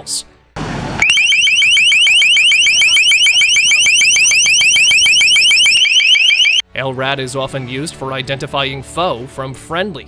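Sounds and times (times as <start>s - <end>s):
loudspeaker rising chirps: 1.0s - 6.6s.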